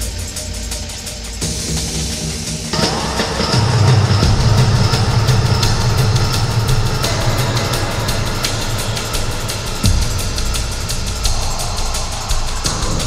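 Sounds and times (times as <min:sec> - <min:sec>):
deep bass line: 0:00.0 - 0:13.0
fast ticking hi-hat: 0:00.0 - 0:13.0.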